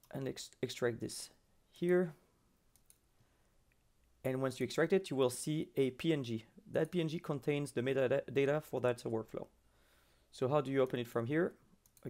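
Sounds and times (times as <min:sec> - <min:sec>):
computer mouse clicks: 0:02.7 - 0:03.0, 0:11.8 - 0:12.0.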